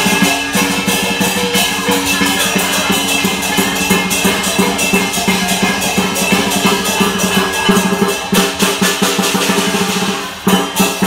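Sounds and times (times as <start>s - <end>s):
drum beating fast rhythm: 0.0s - 11.0s
gong: 0.0s - 11.0s
ringing cymbals: 0.0s - 11.0s.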